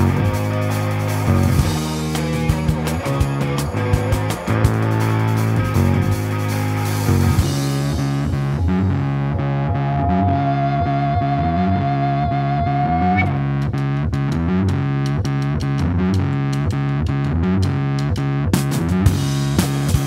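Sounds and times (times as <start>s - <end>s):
bass line: 0.0s - 20.0s
distorted electric guitar: 0.0s - 20.0s
drums: 0.0s - 20.0s
keyboard: 0.0s - 20.0s
held high guitar note bending: 1.6s - 13.7s.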